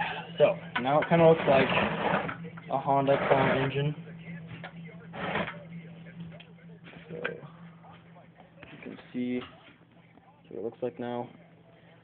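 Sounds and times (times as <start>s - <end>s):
steady low hum: 0.0s - 12.0s
engine scraping on workbench: 1.0s - 2.4s, 3.0s - 3.8s, 5.1s - 5.6s.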